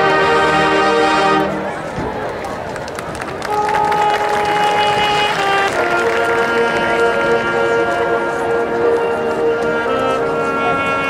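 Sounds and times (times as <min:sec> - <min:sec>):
crowd noise from stands: 0:00.0 - 0:11.0
marching band music: 0:00.0 - 0:11.0.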